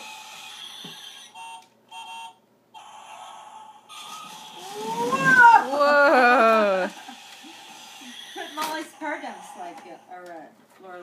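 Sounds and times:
child squealing: 4.6 - 6.9.

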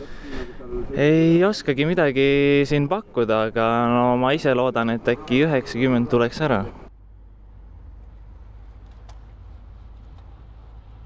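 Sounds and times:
car driving low rumble: 6.8 - 11.0.

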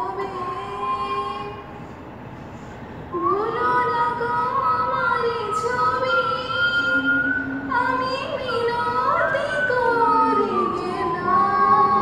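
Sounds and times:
woman singing: 3.2 - 12.0.

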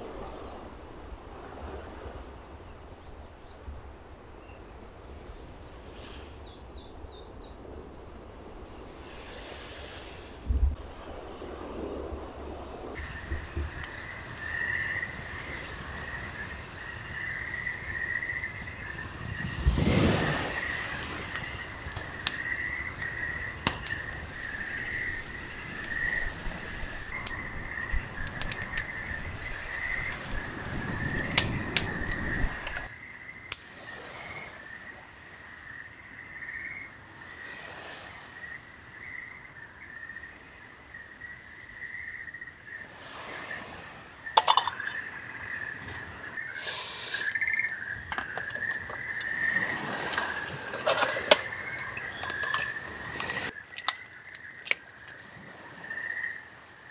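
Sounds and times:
night insects chirping: 4.5 - 56.9
fire whooshing: 9.0 - 32.9, 48.3 - 53.6
campfire crackling and popping: 12.9 - 32.9, 33.5 - 33.7, 44.4 - 56.1.

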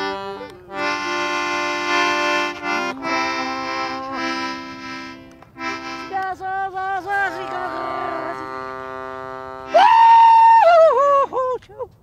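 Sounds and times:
accordion chord: 0.0 - 9.8
woman yodeling: 6.1 - 8.4, 9.6 - 11.9.

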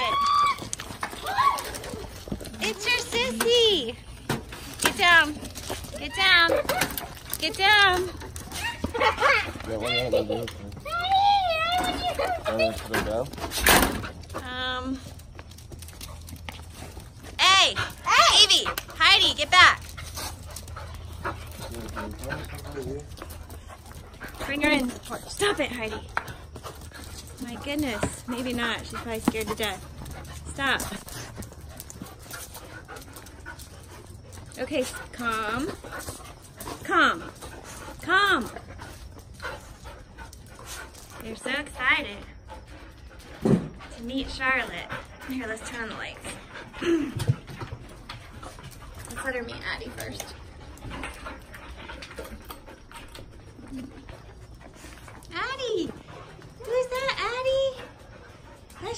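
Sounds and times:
dogs whining: 8.0 - 13.2.

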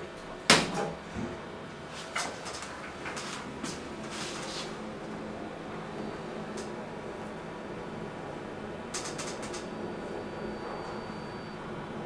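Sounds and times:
elevator car clunk: 8.9 - 11.2.

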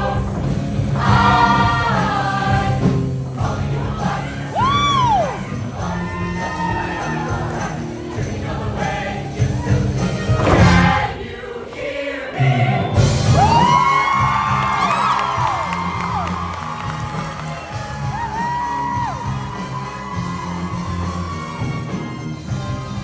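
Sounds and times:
upbeat accompaniment with bass: 0.0 - 11.2, 12.4 - 23.0
choir singing: 0.0 - 13.3
audience cheering: 13.3 - 22.9.

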